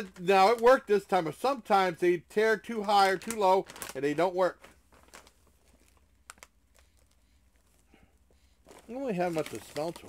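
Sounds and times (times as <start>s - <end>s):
plastic snack bag crinkling: 0.0s - 7.8s, 8.6s - 10.0s.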